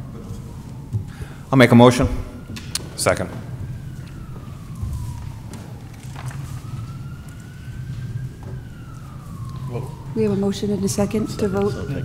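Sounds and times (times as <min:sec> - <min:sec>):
distant siren wailing: 0:00.0 - 0:12.0.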